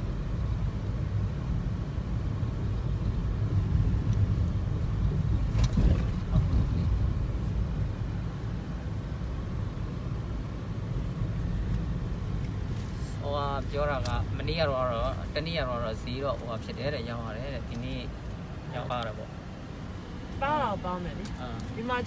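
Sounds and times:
car engine and tyres rumbling: 0:00.0 - 0:22.0.

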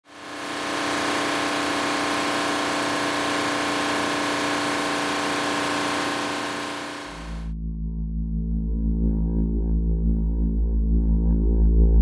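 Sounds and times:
machine humming: 0:00.0 - 0:07.5.

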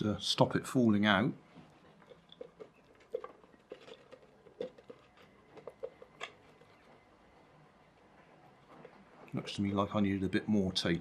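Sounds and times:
plastic toy clicks and crinkles: 0:02.3 - 0:06.6.

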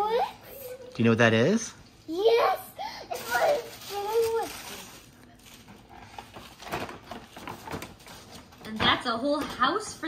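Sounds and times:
child exclaiming: 0:02.1 - 0:04.5
tissue paper crinkling: 0:03.1 - 0:08.8.

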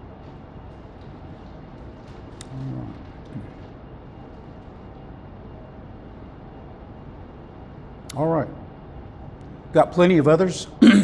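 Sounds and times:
low murmur of voice: 0:02.4 - 0:03.7.

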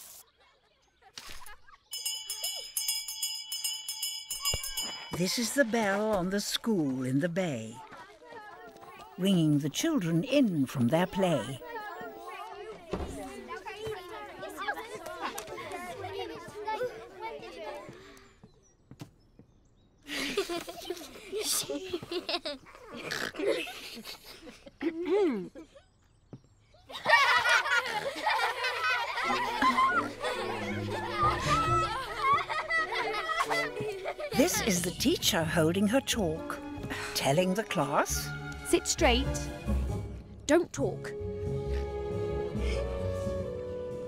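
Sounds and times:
handbell ringing rapidly: 0:01.9 - 0:05.2
children giggling: 0:20.0 - 0:34.9.

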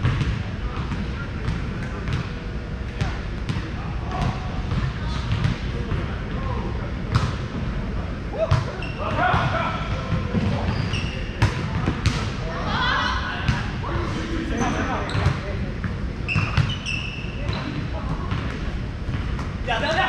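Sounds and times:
players' voices: 0:00.3 - 0:20.0.

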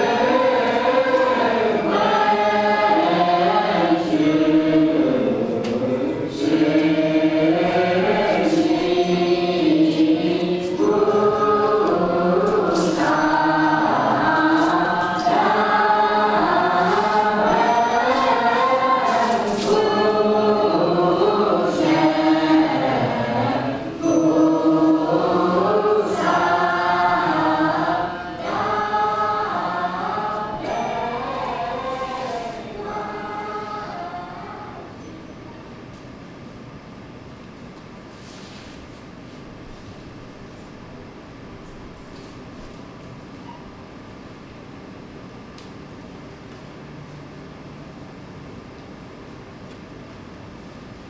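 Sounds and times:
choir singing long notes: 0:00.0 - 0:35.2.

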